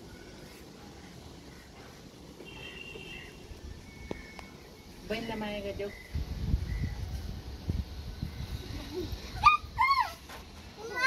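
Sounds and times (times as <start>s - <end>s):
girl squealing: 9.4s - 10.2s.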